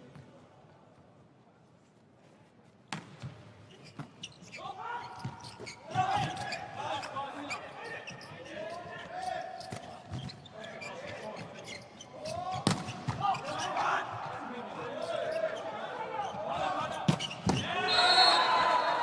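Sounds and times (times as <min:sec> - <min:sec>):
sneakers squeaking on court: 0:03.0 - 0:09.0, 0:09.6 - 0:13.5, 0:17.0 - 0:17.7.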